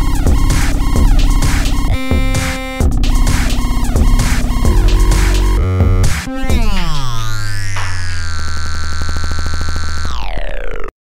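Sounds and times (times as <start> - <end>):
stuttering synthesizer chord: 0.0 - 10.6.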